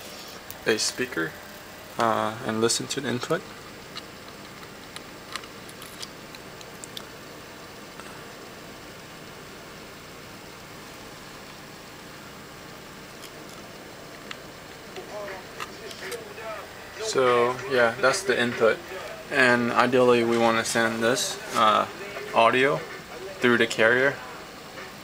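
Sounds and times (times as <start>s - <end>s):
steady low hiss: 0.0s - 25.0s.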